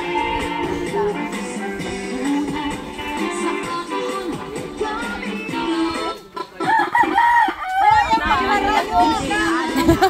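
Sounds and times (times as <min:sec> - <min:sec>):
rooster crowing: 0:06.6 - 0:08.2.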